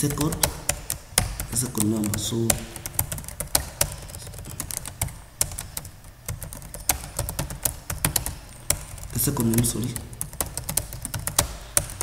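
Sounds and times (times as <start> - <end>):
computer keyboard typing: 0.0 - 12.0.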